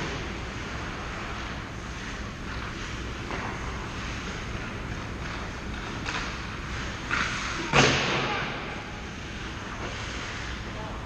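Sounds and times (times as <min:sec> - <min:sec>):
skates scraping on ice: 0:00.0 - 0:10.7.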